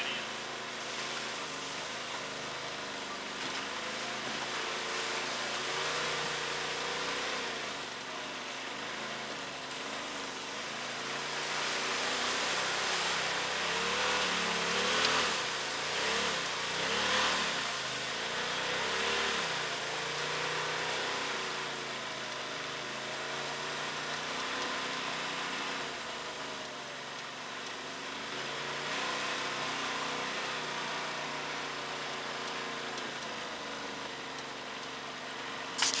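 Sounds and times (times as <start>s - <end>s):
off-road vehicle engine running: 0.0s - 36.0s.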